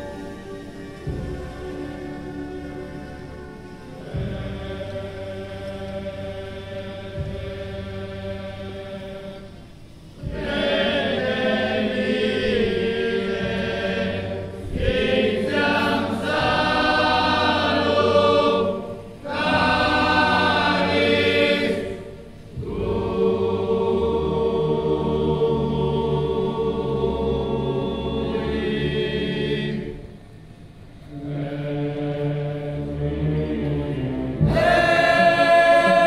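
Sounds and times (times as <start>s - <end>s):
men's choir chanting: 1.6s - 9.6s, 10.2s - 30.0s, 31.1s - 36.0s.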